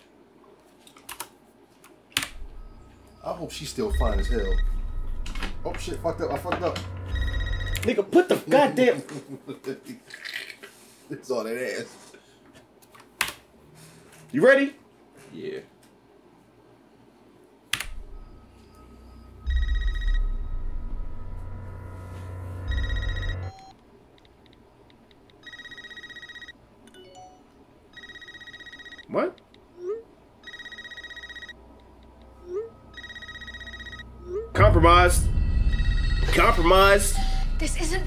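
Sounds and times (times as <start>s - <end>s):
low rumble: 2.3s - 7.9s, 17.9s - 23.5s, 34.0s - 38.0s
telephone ringing: 2.6s - 8.0s, 18.1s - 23.8s, 25.4s - 29.1s, 30.4s - 34.7s, 35.3s - 37.6s
sharp hit: 3.8s - 7.9s, 34.6s - 38.0s.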